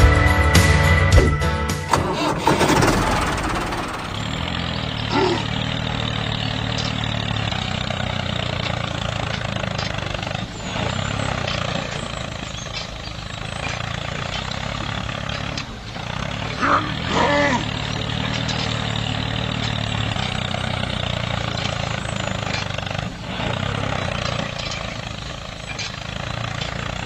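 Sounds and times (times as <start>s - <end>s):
background music: 0.0s - 4.1s
tractor engine running: 0.0s - 27.0s.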